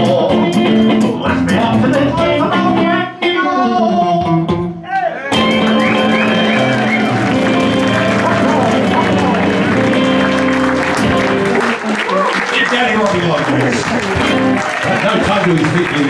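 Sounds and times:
man singing: 0.0 - 4.8
acoustic guitar picked: 0.0 - 11.8
audience applause: 5.3 - 16.0.

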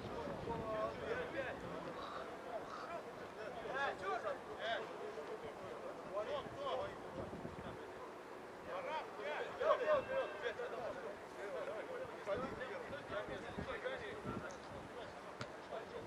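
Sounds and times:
men calling and talking: 0.0 - 16.0.

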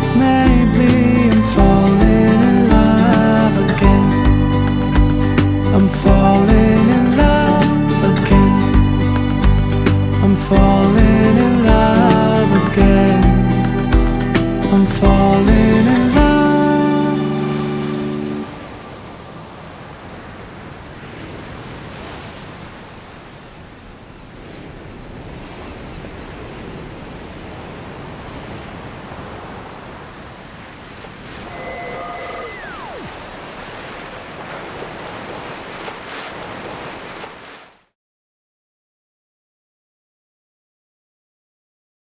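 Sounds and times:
surf breaking on a beach: 15.0 - 37.9
brief high tone: 31.4 - 33.2.

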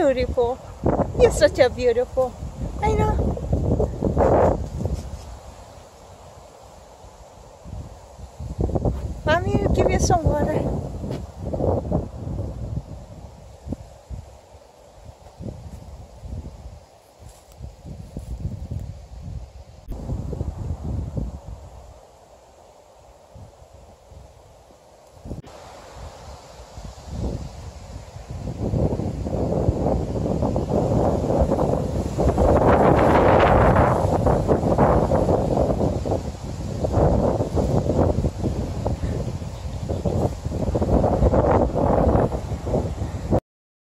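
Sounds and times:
wind gusting across microphone: 0.0 - 43.4.

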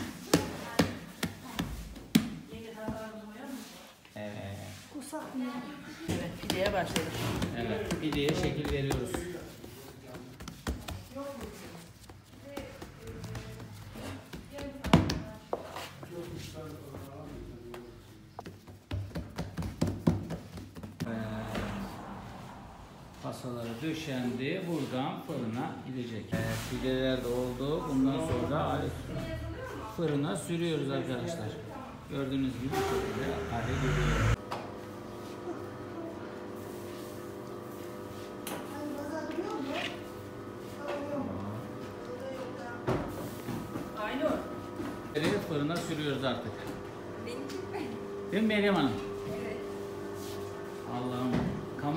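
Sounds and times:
hands patting dough on table: 6.3 - 15.6, 18.4 - 21.1.

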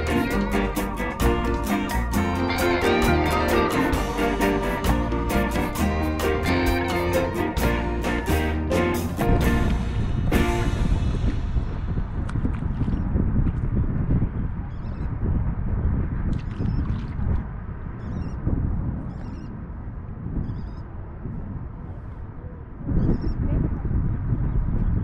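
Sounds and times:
wind buffeting microphone: 9.2 - 25.0.

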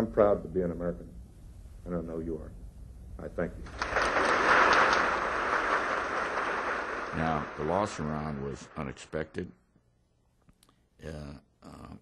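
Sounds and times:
audience applauding: 3.7 - 9.4.

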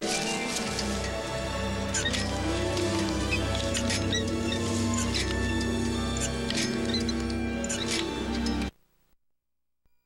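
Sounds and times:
orchestral film music: 0.0 - 8.7.

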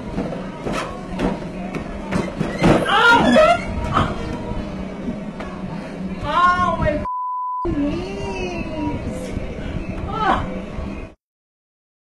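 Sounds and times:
censor bleep: 7.0 - 7.7.

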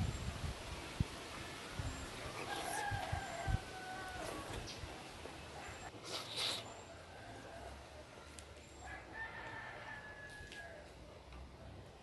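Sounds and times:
rooster crowing: 2.4 - 4.5, 8.8 - 10.9.

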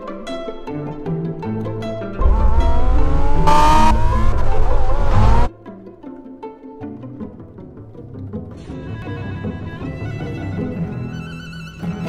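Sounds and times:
car engine revving: 2.2 - 5.5.

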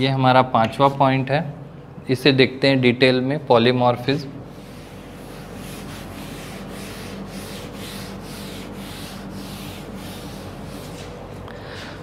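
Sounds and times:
eraser rubbing on chalkboard: 4.5 - 11.2.

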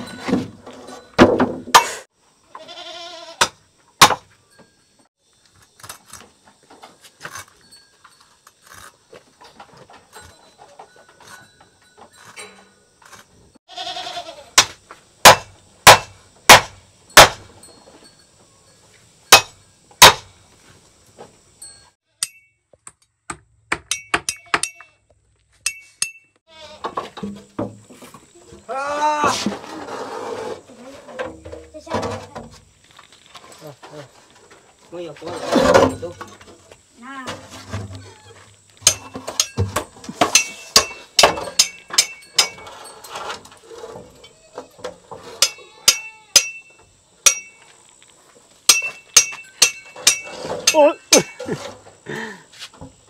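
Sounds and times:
voices or bleating calls: 2.5 - 3.4, 13.7 - 14.6, 26.5 - 26.9, 28.6 - 29.5, 44.2 - 46.6
sharp metal knocks: 3.4 - 4.7, 14.6 - 17.6, 19.3 - 20.3, 22.2 - 24.9, 38.8 - 42.9, 45.4 - 47.6, 48.7 - 51.5
metal clinks: 9.4 - 13.0, 23.9 - 26.4, 40.3 - 43.3, 45.4 - 47.8, 48.7 - 51.5.

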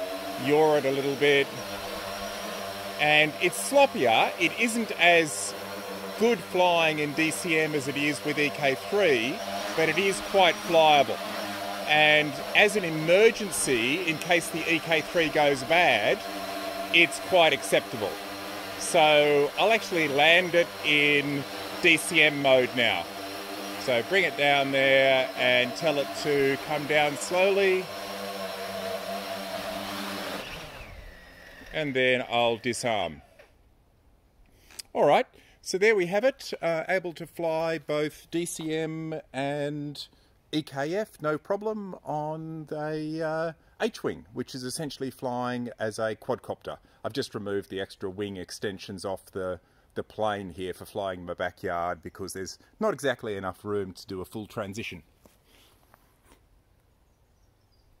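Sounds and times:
drone motors and propellers humming: 0.0 - 32.6.

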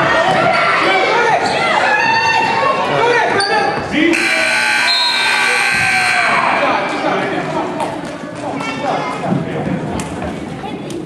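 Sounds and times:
steady electronic buzzer: 4.1 - 6.7.

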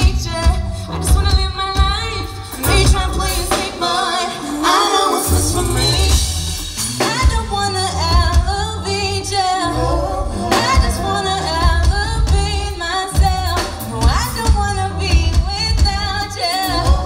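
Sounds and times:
strong low bass: 0.0 - 3.6, 5.3 - 17.0
woman singing: 0.0 - 6.3, 7.0 - 17.0
live band playing: 0.0 - 17.0.

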